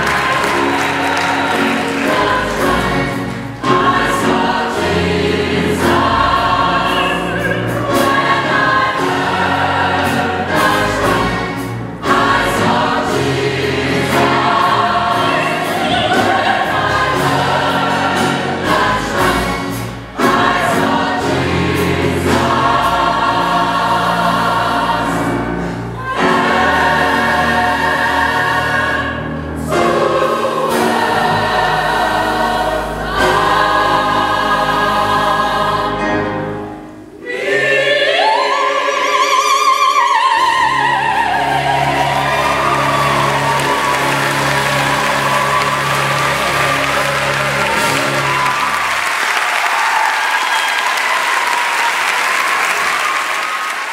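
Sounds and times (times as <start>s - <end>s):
gospel choir singing: 0.0s - 53.9s.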